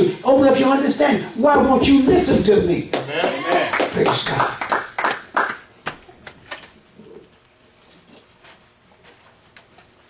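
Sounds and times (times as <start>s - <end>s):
scattered handclaps: 2.9s - 6.6s.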